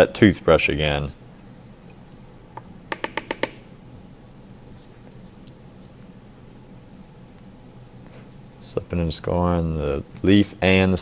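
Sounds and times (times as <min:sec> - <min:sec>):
faint room hum: 0:00.0 - 0:11.0.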